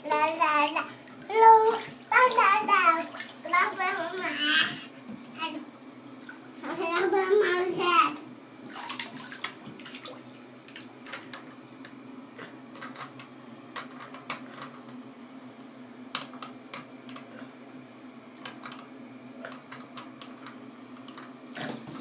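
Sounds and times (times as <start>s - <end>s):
child babbling: 0.1s - 5.6s
water splashing: 1.1s - 3.8s, 8.7s - 11.0s.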